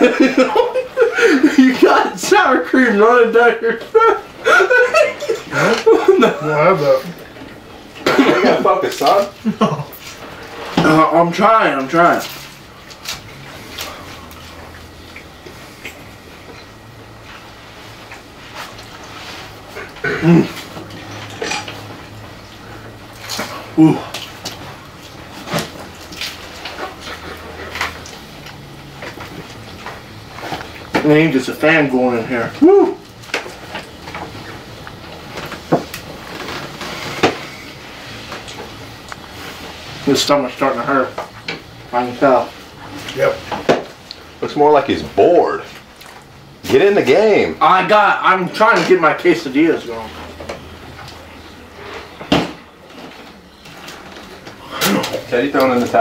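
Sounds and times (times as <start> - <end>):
fan humming: 0.0 - 56.0.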